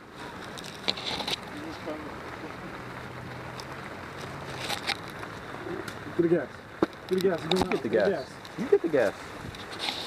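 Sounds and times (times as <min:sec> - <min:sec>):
rain: 0:00.0 - 0:10.0
wind: 0:00.0 - 0:10.0.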